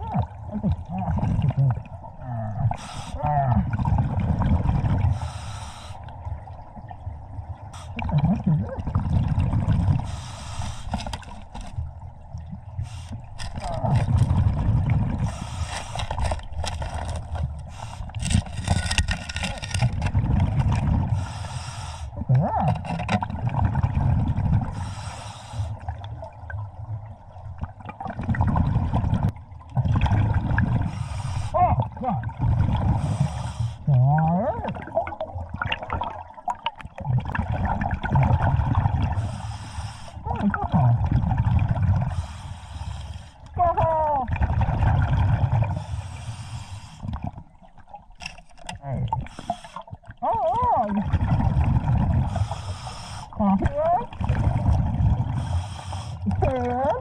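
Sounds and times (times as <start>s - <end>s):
exhaled bubbles rushing: 0.0s - 5.2s, 6.1s - 21.4s, 22.2s - 24.9s, 25.8s - 39.6s, 40.2s - 42.4s, 43.5s - 46.0s, 48.8s - 57.0s
regulator hissing on inhale: 5.1s - 6.1s, 10.0s - 11.1s, 15.2s - 16.1s, 21.2s - 22.2s, 24.7s - 25.8s, 30.9s - 31.6s, 33.0s - 33.9s, 39.2s - 40.2s, 42.1s - 43.5s, 45.8s - 47.1s, 49.3s - 49.9s, 52.3s - 53.4s, 55.4s - 56.2s.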